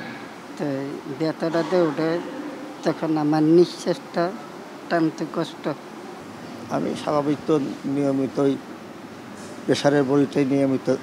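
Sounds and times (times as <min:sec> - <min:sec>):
man speaking: 0:00.6 - 0:05.8, 0:06.6 - 0:08.6, 0:09.7 - 0:11.0.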